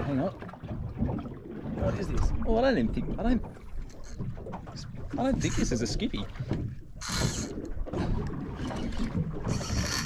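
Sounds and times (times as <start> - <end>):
wind and water rumble: 0.0 - 10.0.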